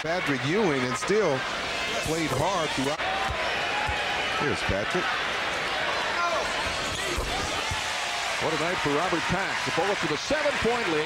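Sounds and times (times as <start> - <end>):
arena crowd hubbub: 0.0 - 11.0.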